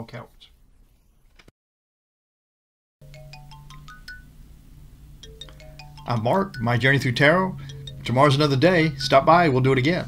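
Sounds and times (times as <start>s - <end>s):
steady low hum: 3.0s - 10.0s
bell-like chiming jingle: 5.2s - 9.0s.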